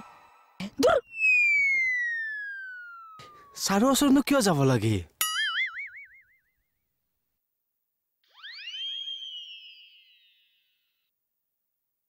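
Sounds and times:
swooping tone: 1.2 - 3.6.

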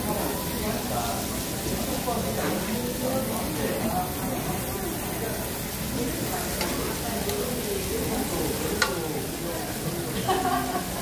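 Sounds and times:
meat sizzling on a grill plate: 0.0 - 11.0.

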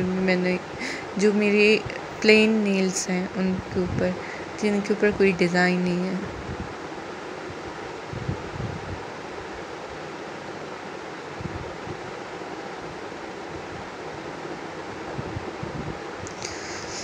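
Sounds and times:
background hiss: 0.0 - 17.0.

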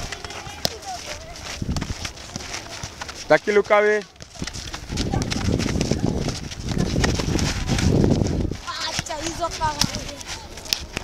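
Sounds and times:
feet running on dirt: 0.0 - 11.0
shoes tapping ball: 0.0 - 11.0
wind on microphone: 1.2 - 2.2, 4.3 - 11.0.

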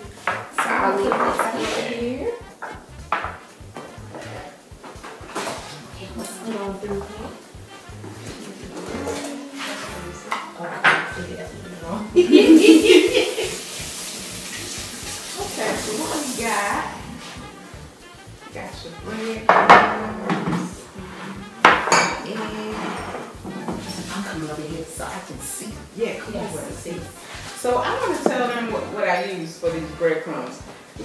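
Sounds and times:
kitchenware clattering on tiles: 0.2 - 1.9, 8.2 - 11.3, 19.4 - 20.8, 21.6 - 24.3.

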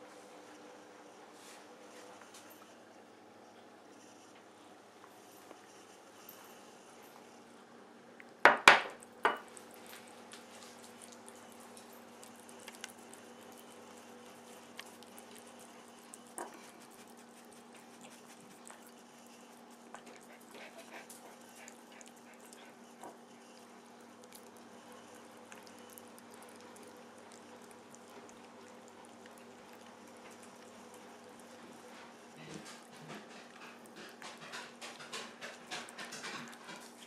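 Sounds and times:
cat chewing and licking: 8.2 - 37.0
ceramic bowl knocking on wood: 8.5 - 9.4.

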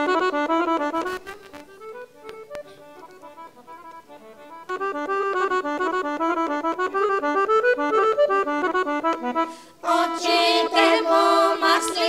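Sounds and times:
accordion playing folk tune: 0.0 - 12.0.

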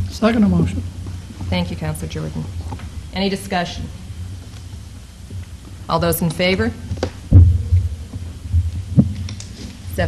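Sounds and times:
steady low hum: 0.0 - 10.0
soft low thumps: 7.3 - 9.2.

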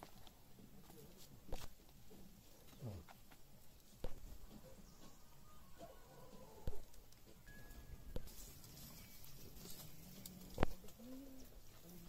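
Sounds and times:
dove cooing: 4.4 - 7.0, 8.3 - 12.0.

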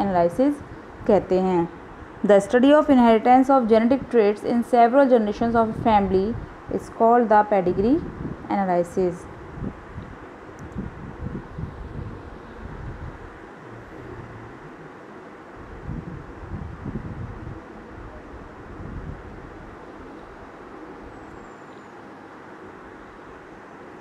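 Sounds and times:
low irregular rumbling: 0.0 - 20.6
steady background hiss: 0.0 - 24.0.

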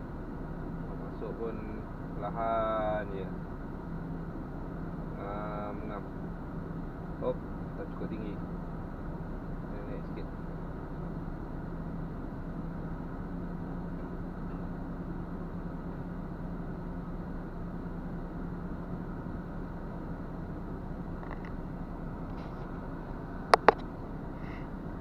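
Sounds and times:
diesel engine idling: 0.0 - 25.0.

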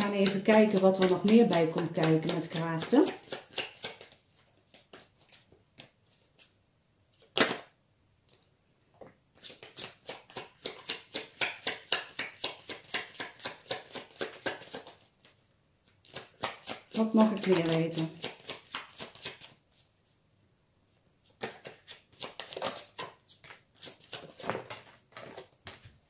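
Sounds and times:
cards being shuffled: 0.0 - 6.6, 9.4 - 19.9, 21.2 - 26.0.

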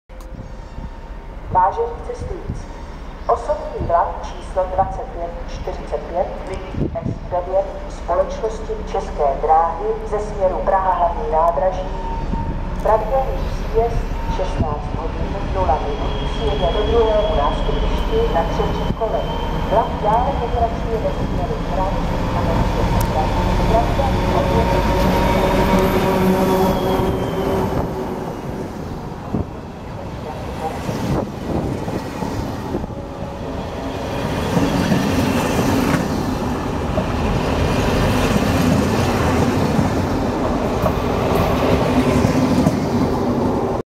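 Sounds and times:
diesel locomotive engine running: 0.2 - 43.8
train wheels rattling on rails: 12.0 - 43.8.

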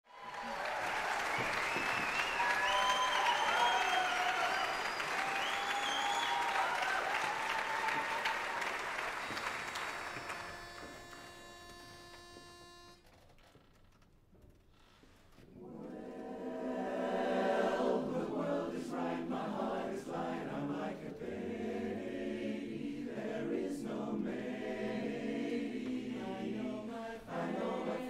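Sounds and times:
audience applauding and cheering: 0.0 - 11.4
whistles: 0.3 - 12.2
reedy pitch-pipe note: 9.7 - 13.0.

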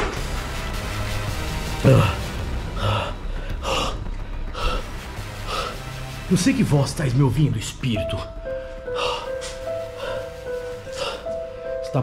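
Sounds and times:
man breathing heavily: 1.7 - 6.3, 8.5 - 11.8.

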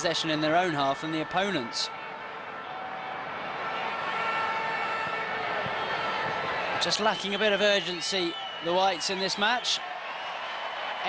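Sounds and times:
stadium crowd roar: 0.0 - 11.0.

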